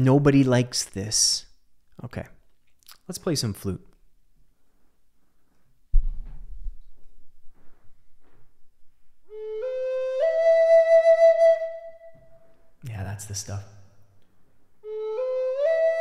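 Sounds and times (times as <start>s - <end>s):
low thump: 5.9s - 8.5s
wooden flute notes: 9.2s - 12.7s, 14.8s - 16.0s.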